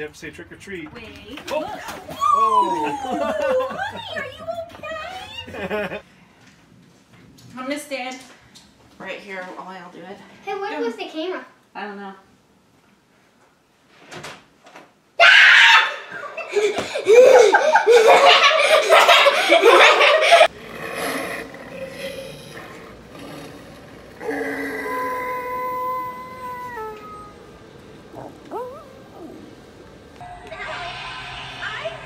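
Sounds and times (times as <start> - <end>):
laughter: 2.6 - 4.4, 5.4 - 6.0, 16.1 - 20.5
loud shrieking: 20.5 - 27.5.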